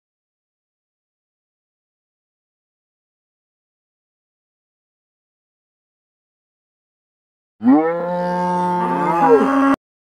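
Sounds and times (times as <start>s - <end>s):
low moo-like call: 7.6s - 9.8s.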